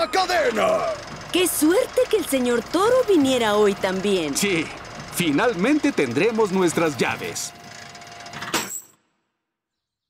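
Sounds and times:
chain rattling down shaft: 0.0s - 9.0s.

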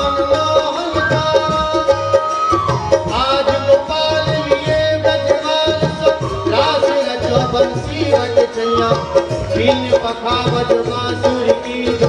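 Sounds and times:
hand drum rhythm: 0.0s - 12.0s
harmonium melody: 0.0s - 12.0s.

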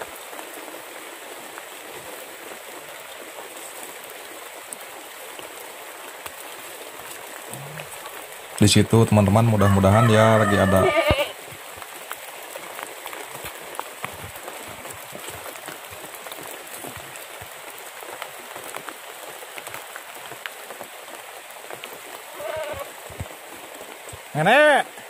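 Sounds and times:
light rain on leaves: 0.0s - 25.0s
water drips: 1.2s - 9.4s, 11.0s - 24.3s.

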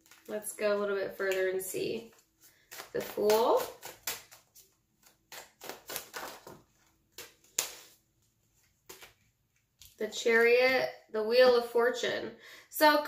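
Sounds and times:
cards snapping and sliding: 2.7s - 8.0s.

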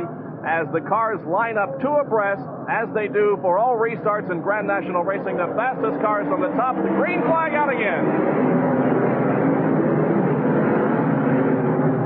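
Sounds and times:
many race car engines droning: 0.0s - 12.0s.

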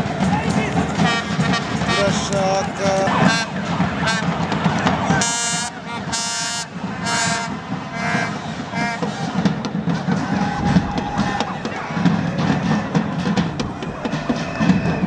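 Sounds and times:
stadium crowd noise: 0.0s - 15.0s
fans' horn blasts: 0.3s - 15.0s.

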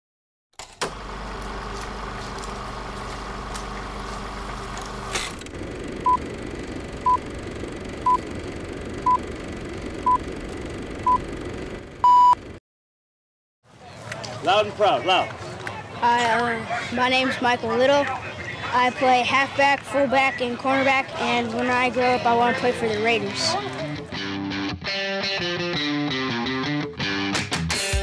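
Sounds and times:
crackling hum: 1.0s - 12.6s
long loud beep: 12.0s - 12.4s
short high beeps: 12.0s - 12.4s.

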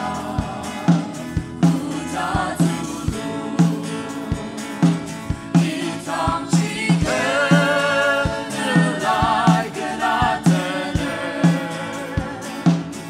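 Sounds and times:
band drums and bass: 0.0s - 13.0s
group singing gospel in harmony: 0.0s - 13.0s.

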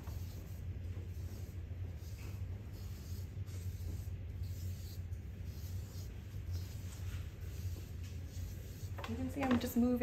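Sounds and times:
pencil scratching on paper: 0.0s - 9.6s
steady low hum: 0.0s - 10.0s.

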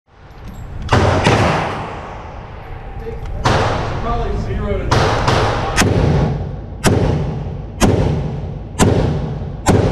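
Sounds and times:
rifle gunshots echoing indoors: 0.9s - 2.6s, 3.4s - 4.2s, 4.8s - 9.9s.

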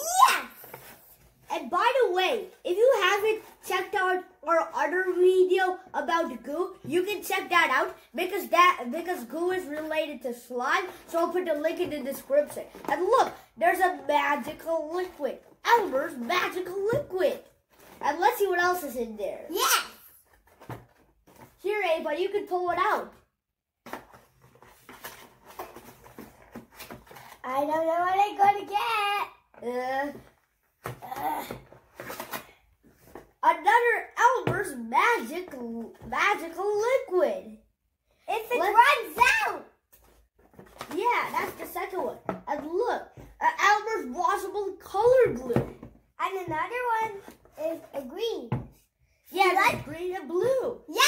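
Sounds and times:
child speaking: 0.0s - 20.2s, 21.6s - 23.2s, 27.3s - 31.6s, 33.4s - 39.8s, 40.8s - 48.7s, 49.3s - 51.0s.

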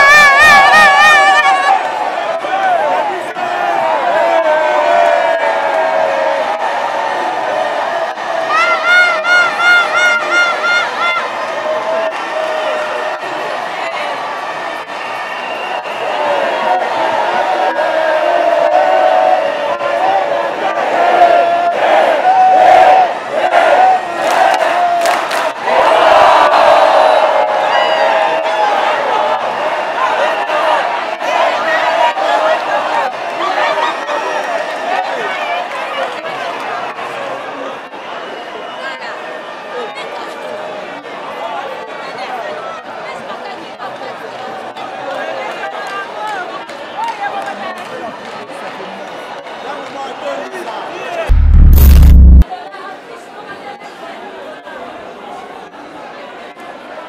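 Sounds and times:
stadium crowd cheering: 0.0s - 52.5s
sharp cracks: 51.3s - 52.4s.

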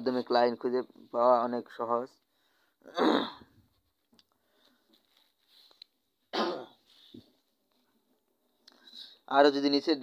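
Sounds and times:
person coughing: 2.9s - 3.5s, 6.3s - 6.8s.

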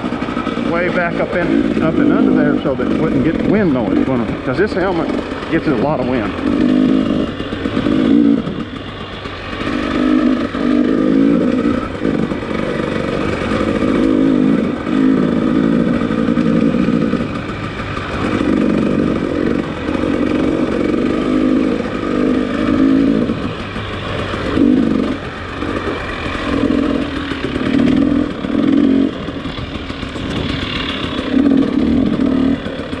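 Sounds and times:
dirt bike engine revving: 0.0s - 33.0s.

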